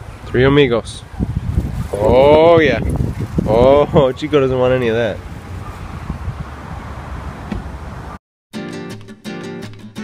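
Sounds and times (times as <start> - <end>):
wind buffeting microphone: 0.0 - 8.2.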